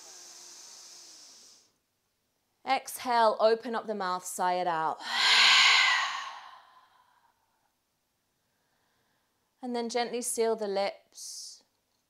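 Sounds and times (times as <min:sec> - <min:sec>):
woman sighing breathy exhale: 0:05.0 - 0:07.2.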